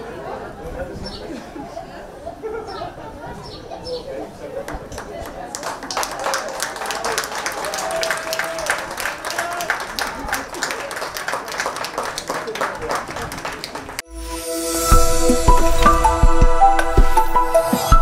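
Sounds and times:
voices talking: 0:00.0 - 0:14.0
light applause: 0:04.6 - 0:14.0.

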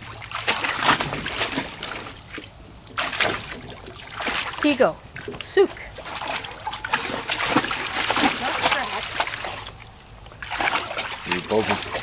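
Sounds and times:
water splashing in a pool: 0:00.0 - 0:12.0.

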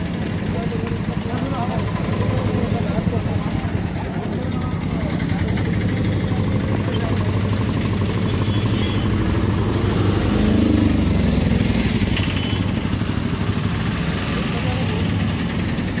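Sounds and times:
voices in background: 0:00.1 - 0:10.7.

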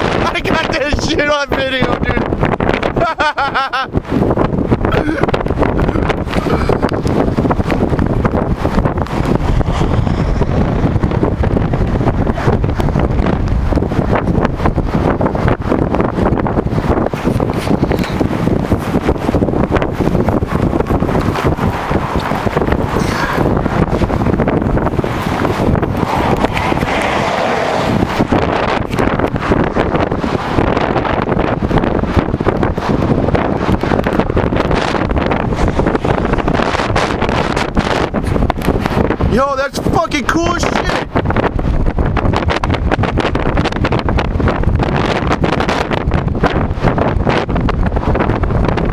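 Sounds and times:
wind buffeting microphone: 0:00.0 - 0:48.9.

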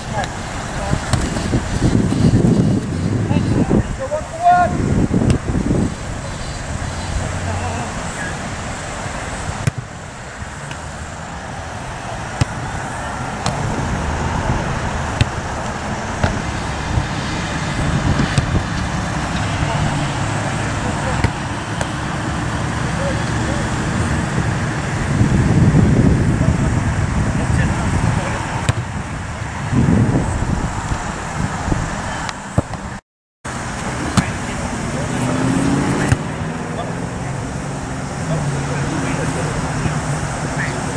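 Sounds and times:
low rumble of road traffic: 0:00.0 - 0:40.9.

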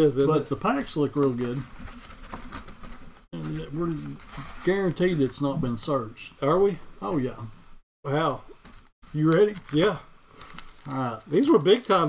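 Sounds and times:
man speaking: 0:00.0 - 0:01.7, 0:03.4 - 0:08.5, 0:09.1 - 0:10.1, 0:10.9 - 0:12.0.

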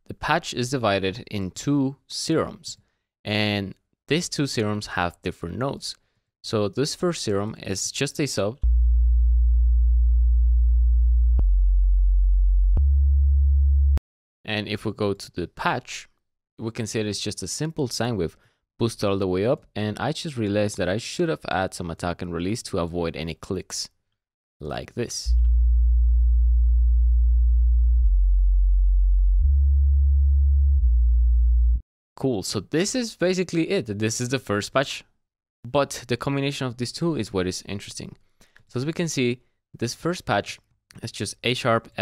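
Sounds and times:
sine wave sub bass notes: 0:08.6 - 0:14.0, 0:25.3 - 0:31.8.

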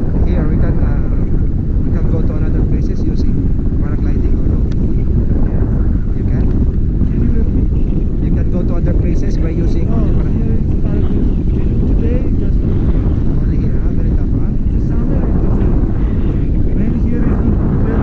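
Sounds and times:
wind buffeting microphone: 0:00.0 - 0:18.0
faint muffled voices: 0:00.2 - 0:18.0.

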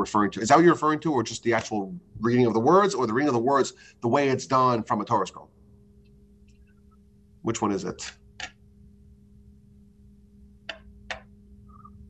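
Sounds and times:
faint low two-tone hum: 0:00.0 - 0:12.0.

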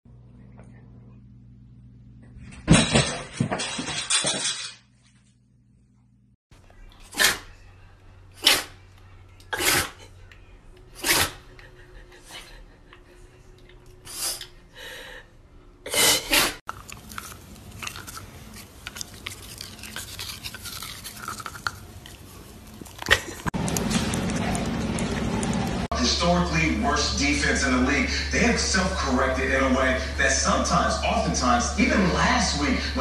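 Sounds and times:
dog sneezing: 0:07.0 - 0:07.6, 0:08.4 - 0:08.8, 0:09.5 - 0:10.1, 0:10.9 - 0:11.5, 0:15.9 - 0:16.6
dog chewing plastic toothbrush: 0:16.7 - 0:25.5.

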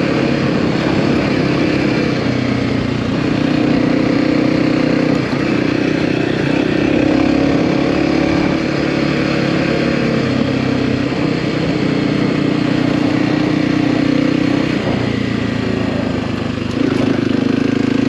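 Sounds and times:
dirt bike engine running: 0:00.0 - 0:18.0.

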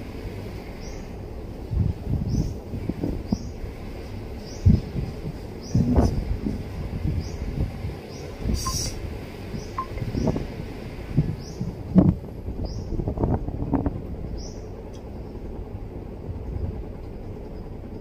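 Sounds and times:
steady low rumble: 0:00.0 - 0:18.0
short high chirp: 0:08.6 - 0:09.0.

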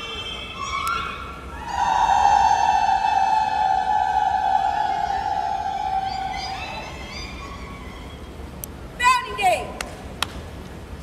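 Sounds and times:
women singing long high note: 0:00.5 - 0:07.9.

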